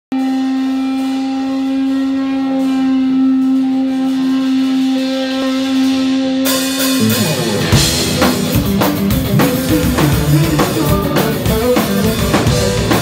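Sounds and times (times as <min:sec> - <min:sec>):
electric guitar note sustaining: 0:00.1 - 0:13.0.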